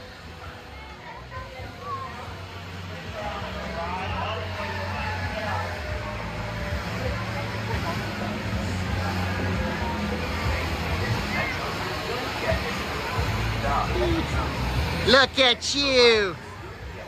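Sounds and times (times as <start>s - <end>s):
low mechanical hum: 0.0s - 17.0s
people's voices: 0.0s - 17.0s.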